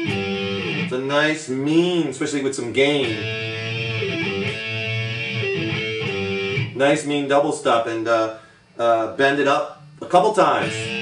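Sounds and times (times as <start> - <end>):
overdriven electric guitar bending notes: 0.0 - 2.1, 2.7 - 6.8, 9.8 - 11.0.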